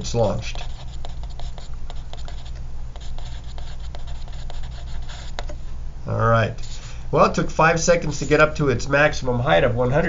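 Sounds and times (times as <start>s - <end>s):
pen scratching on paper: 0.0s - 5.5s
steady low hum: 0.0s - 10.0s.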